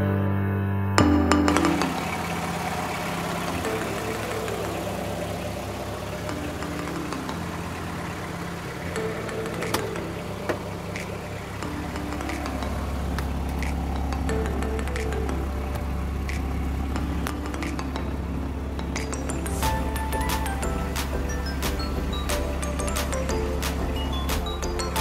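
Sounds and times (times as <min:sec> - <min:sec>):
background music: 0:00.0 - 0:25.0
car engine idling: 0:01.2 - 0:25.0.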